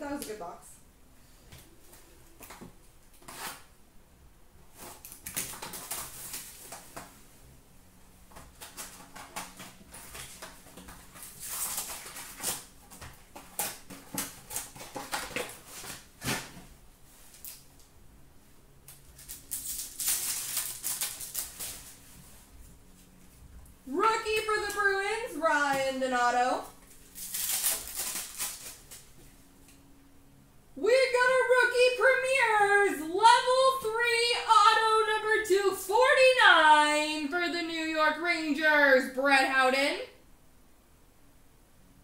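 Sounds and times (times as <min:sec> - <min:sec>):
pack wrappers rustling: 0:04.8 - 0:07.1, 0:08.3 - 0:16.7, 0:18.9 - 0:22.2, 0:26.8 - 0:29.1.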